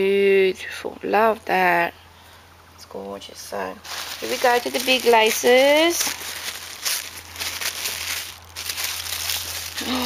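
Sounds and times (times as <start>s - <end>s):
rustling and crinkling materials: 3.8s - 10.0s.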